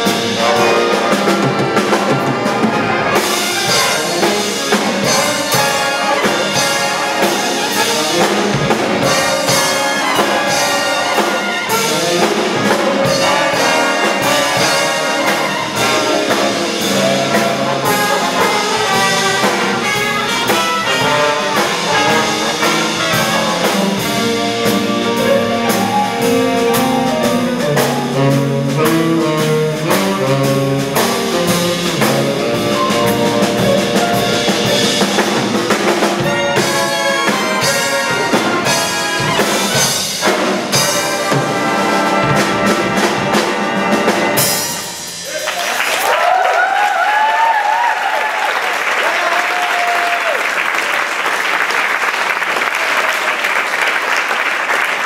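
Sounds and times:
jazz big band playing: 0:00.0 - 0:55.0
audience applause: 0:45.2 - 0:55.0.

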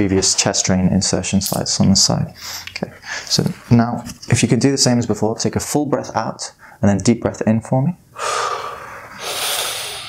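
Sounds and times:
man breathing deeply: 0:08.2 - 0:10.0.

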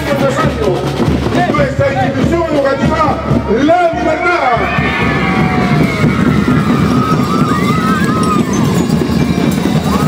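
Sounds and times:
marching band drums: 0:00.0 - 0:10.0.

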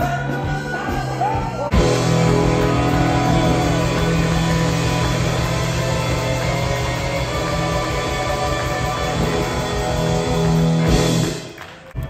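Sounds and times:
drums: 0:00.0 - 0:12.0
steady low held note: 0:01.7 - 0:10.9
electric guitars: 0:01.7 - 0:11.5.

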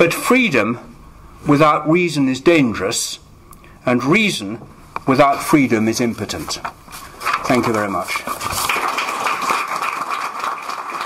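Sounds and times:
audience applauding: 0:08.3 - 0:11.0.

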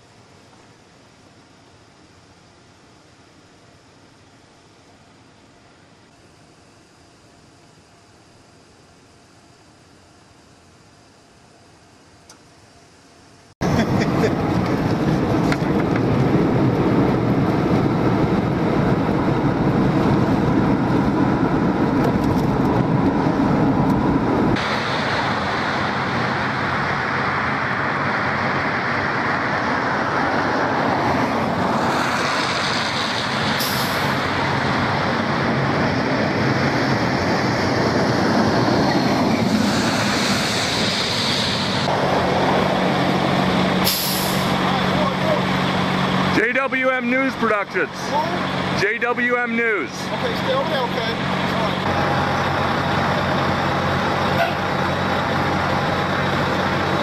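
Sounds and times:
car road noise: 0:12.2 - 0:57.0
fire engines idling: 0:13.6 - 0:38.8, 0:39.4 - 0:57.0
air brake hisses: 0:32.7 - 0:34.2, 0:43.8 - 0:44.6.

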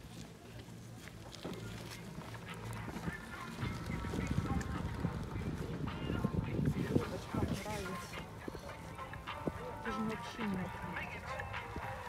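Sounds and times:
faint voices talking: 0:00.0 - 0:12.0
wind on microphone: 0:03.6 - 0:08.6.

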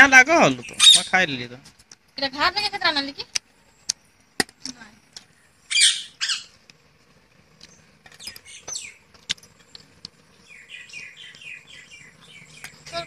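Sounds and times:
parakeet squawking: 0:00.7 - 0:01.2, 0:05.7 - 0:06.6.

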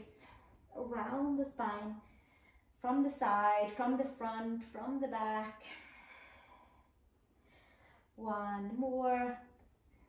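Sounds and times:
person breathing softly: 0:02.0 - 0:02.8, 0:05.6 - 0:08.2.

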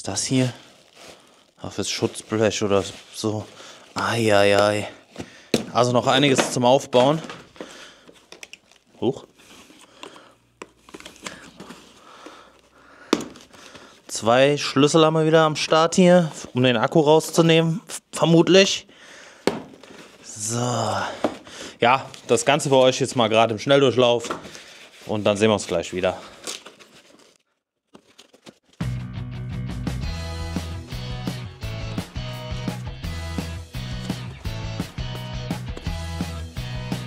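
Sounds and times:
packaging rustling and crinkling: 0:00.0 - 0:14.2, 0:19.5 - 0:28.8
music with steady beat: 0:28.9 - 0:37.0.

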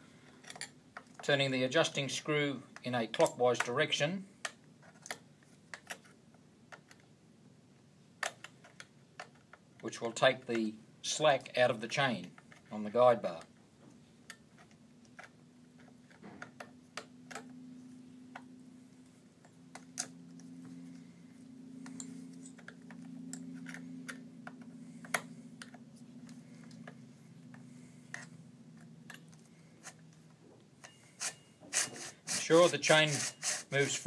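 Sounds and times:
faint low hum: 0:00.0 - 0:34.0.

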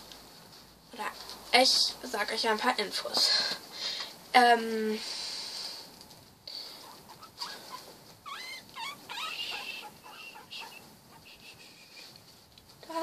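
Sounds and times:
guinea pigs squeaking: 0:06.6 - 0:12.1.

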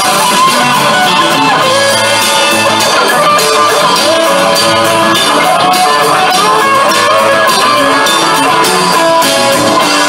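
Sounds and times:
guitar sustaining notes: 0:00.0 - 0:10.0
live rock band playing: 0:00.0 - 0:10.0.

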